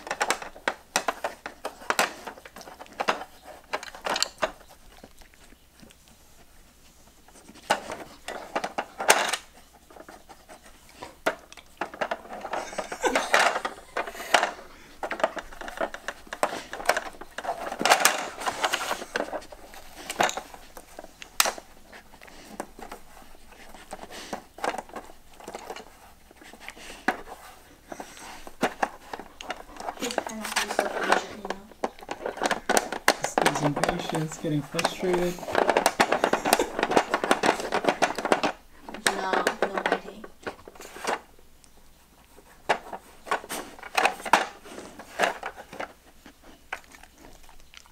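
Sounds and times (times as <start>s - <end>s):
hard plastic clicks and rattles: 28.5s - 41.2s.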